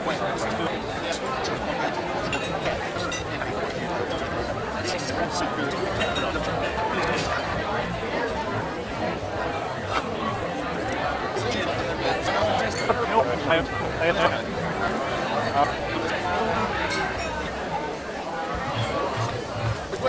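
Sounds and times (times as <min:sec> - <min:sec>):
diners chattering: 0:00.0 - 0:20.0
cutlery clinking on plates: 0:02.2 - 0:03.4, 0:05.9 - 0:07.4.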